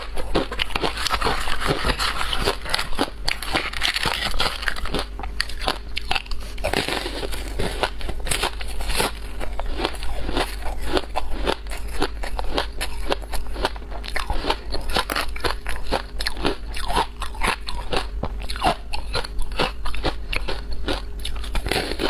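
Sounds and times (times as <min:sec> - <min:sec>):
crunching ice being chewed: 0:00.0 - 0:22.0.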